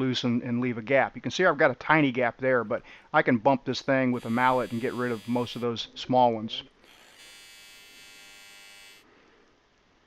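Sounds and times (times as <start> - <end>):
welding arc buzzing: 4.2 - 5.8, 6.8 - 9.0.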